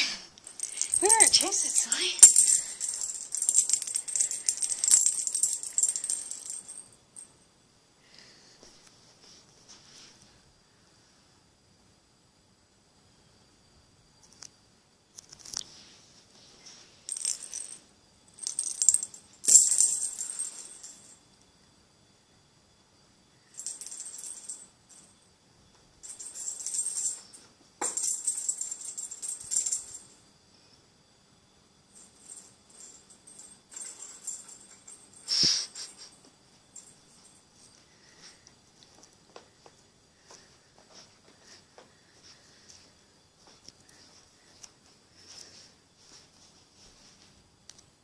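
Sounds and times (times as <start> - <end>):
bell toy rattling and jingling: 0.4 - 7.3, 17.1 - 21.2, 23.5 - 25.2, 26.0 - 30.1, 32.0 - 38.2.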